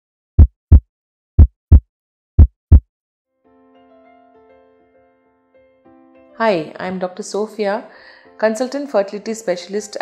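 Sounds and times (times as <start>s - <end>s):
heartbeat double beats: 0.4s - 2.8s
soft keyboard music: 3.4s - 10.0s.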